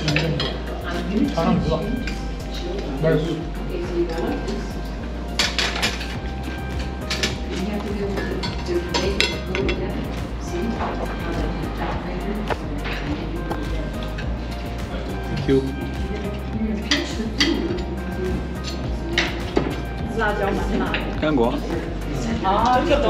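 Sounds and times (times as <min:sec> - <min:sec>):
background music: 0:00.0 - 0:23.0
murmur of voices: 0:00.0 - 0:23.0
cutlery clinking on plates: 0:05.4 - 0:06.2.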